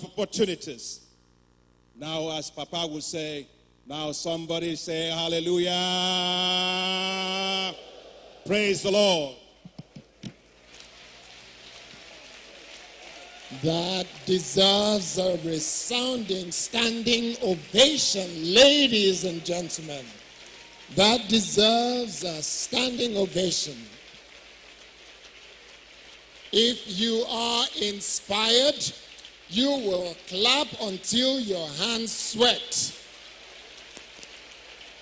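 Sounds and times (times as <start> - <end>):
audience applause: 10.2 - 21.8.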